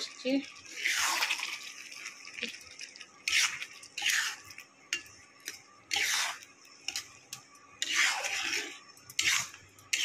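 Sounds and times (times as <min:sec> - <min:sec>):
spatula scraping pan: 0:00.7 - 0:01.6, 0:03.2 - 0:07.2, 0:07.8 - 0:10.0.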